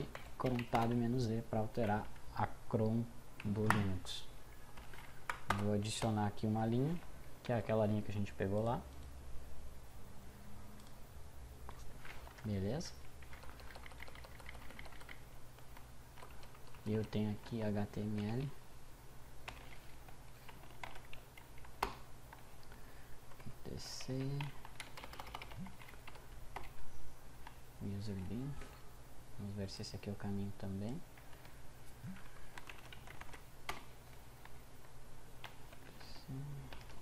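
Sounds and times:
faint low hum: 0.0s - 37.0s
computer keyboard clicks: 4.8s - 6.2s, 13.2s - 17.1s, 24.4s - 26.8s, 32.1s - 33.9s.

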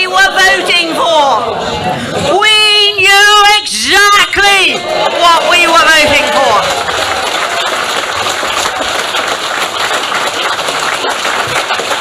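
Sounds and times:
audience applauding: 4.9s - 12.0s.

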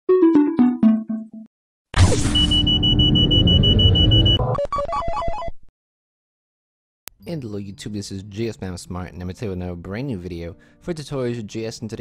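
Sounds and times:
fast-pulsing alarm beep: 2.3s - 4.4s.

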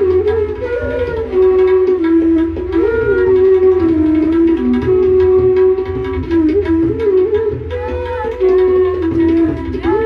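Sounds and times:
bamboo flute slow melody: 0.0s - 10.0s.

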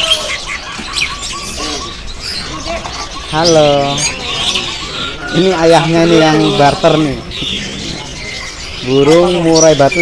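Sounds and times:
songbirds chirping: 0.0s - 10.0s.

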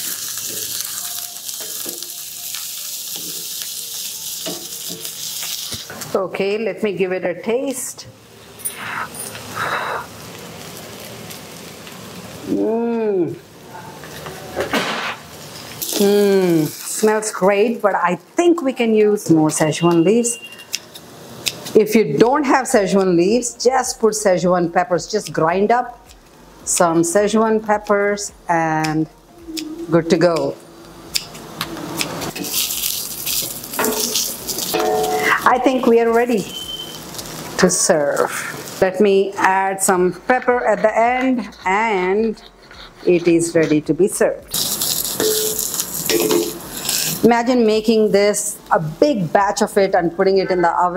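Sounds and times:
potatoes sizzling in a pan: 0.0s - 14.3s, 15.0s - 28.3s, 32.3s - 41.6s, 44.0s - 49.9s
wooden spatula stirring scrapes: 40.7s - 43.9s.

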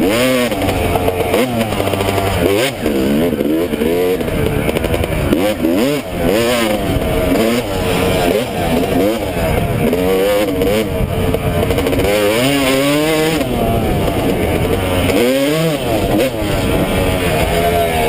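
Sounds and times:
dirt bike engine revving: 0.0s - 18.0s.

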